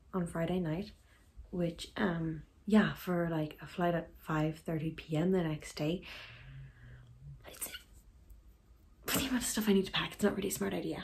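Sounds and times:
short breath: 0:06.0 - 0:07.1.

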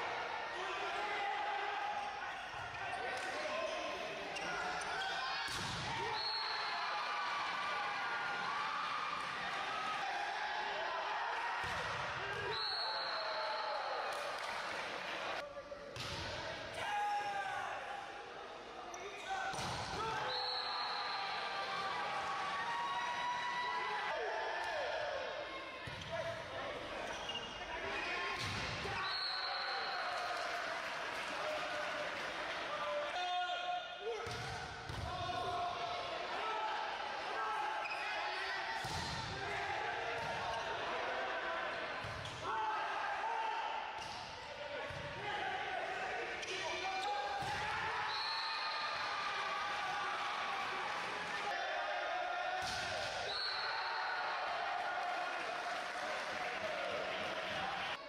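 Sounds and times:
referee's whistle blasts: 0:06.0 - 0:06.9, 0:12.4 - 0:14.1, 0:20.2 - 0:21.6, 0:28.9 - 0:30.2, 0:47.1 - 0:49.1, 0:53.2 - 0:54.3.

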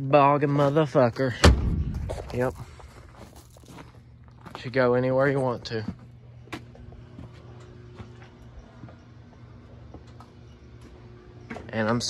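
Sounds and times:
footsteps on gravel: 0:00.5 - 0:11.7.

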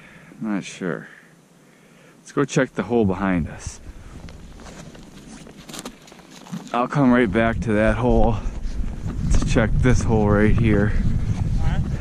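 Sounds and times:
crunch on snow: 0:04.0 - 0:06.9
carry case rustling and scuffing: 0:04.3 - 0:06.8.

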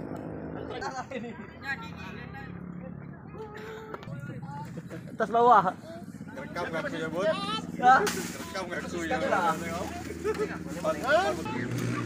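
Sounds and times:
men talking in a crowd: 0:00.4 - 0:12.0.

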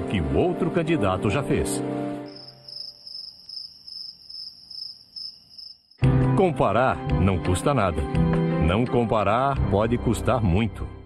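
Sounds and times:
crickets chirping: 0:02.2 - 0:06.0.

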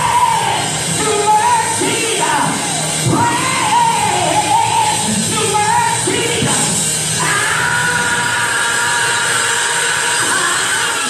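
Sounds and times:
church band playing: 0:00.0 - 0:11.0
gospel singing voice: 0:00.0 - 0:11.0.

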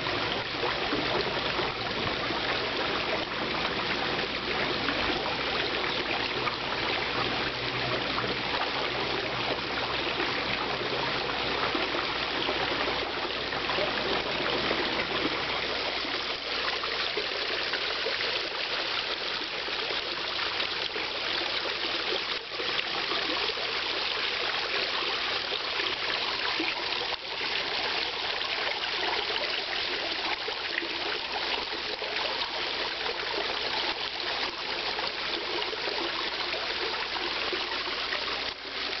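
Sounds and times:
water running into pond: 0:00.0 - 0:39.0.

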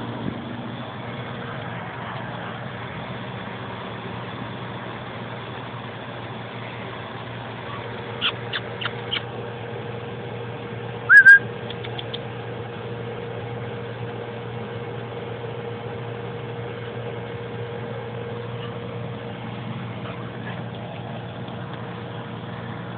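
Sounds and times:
air conditioner unit humming: 0:00.0 - 0:22.9
short chirps: 0:11.1 - 0:11.4
two-note whistle: 0:11.1 - 0:11.4.

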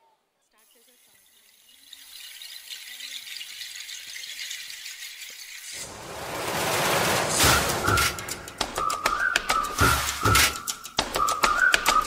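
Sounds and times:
loud rushing sound: 0:05.8 - 0:09.1.

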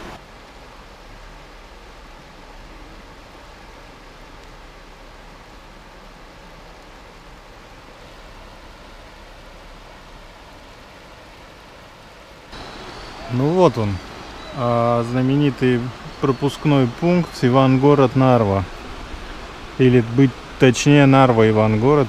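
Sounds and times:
river water rushing: 0:00.0 - 0:22.0.

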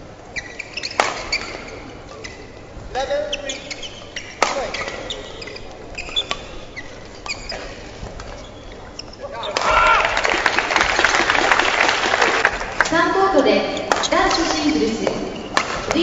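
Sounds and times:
shoes squeaking on floor: 0:00.0 - 0:09.9, 0:13.7 - 0:16.0
shuttlecock hits on racket: 0:04.4 - 0:05.0, 0:13.9 - 0:16.0
crowd applause and cheering: 0:09.6 - 0:12.9.

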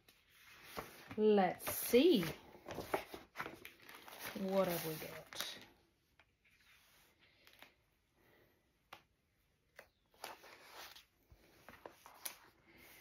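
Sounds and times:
faint rustling of felt and paper: 0:00.0 - 0:08.4.

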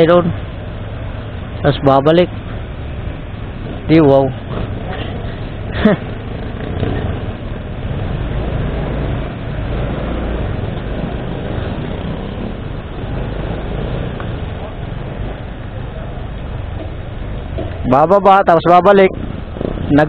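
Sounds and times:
motorcycle engine idling: 0:10.5 - 0:17.9.

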